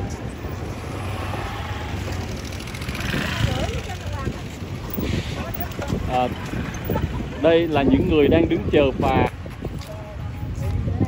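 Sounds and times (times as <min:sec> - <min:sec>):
people chatting: 0:03.2 - 0:06.4.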